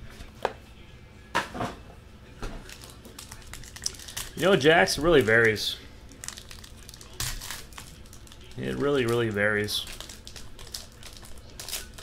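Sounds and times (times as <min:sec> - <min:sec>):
foil pack crinkling: 0:02.6 - 0:12.0.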